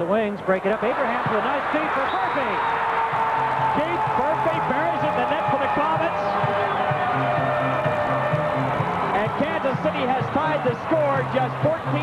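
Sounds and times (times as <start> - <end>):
arena music over loudspeakers: 0.0 - 12.0
crowd noise: 0.0 - 12.0.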